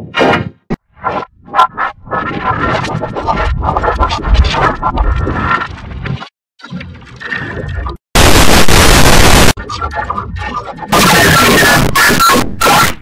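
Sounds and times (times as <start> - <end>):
harsh noise blast: 8.2 - 9.6, 10.9 - 13.0
distorted processed music: 8.2 - 13.0.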